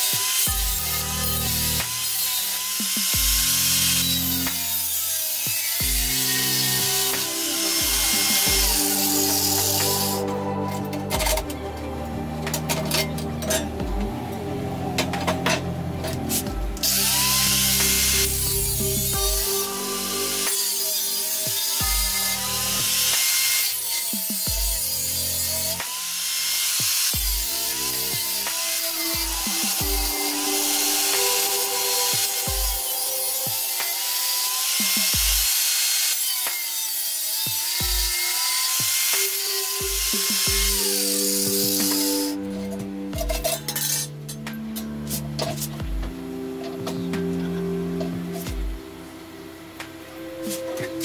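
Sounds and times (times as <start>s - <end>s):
background music with low beat: 0.0s - 26.0s, 26.8s - 35.9s, 37.5s - 51.0s
angle grinder cutting metal: 0.0s - 51.0s.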